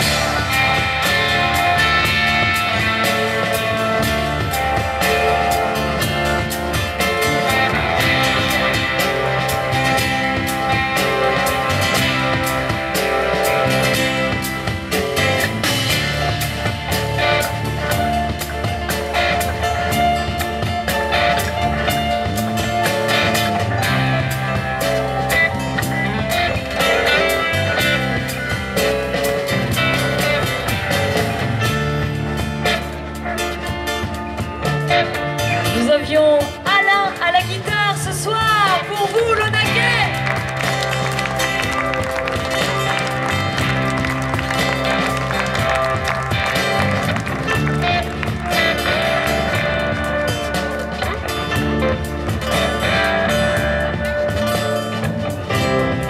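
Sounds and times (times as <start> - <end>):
drum kit: 0.0 - 56.0
guitar: 0.0 - 56.0
sustained bass notes: 0.0 - 56.0.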